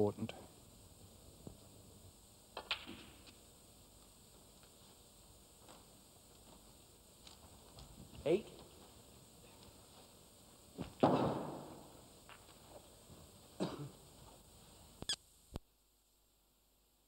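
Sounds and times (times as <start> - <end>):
low room noise: 0.0 - 17.0
short clicks of snooker balls: 2.5 - 3.4.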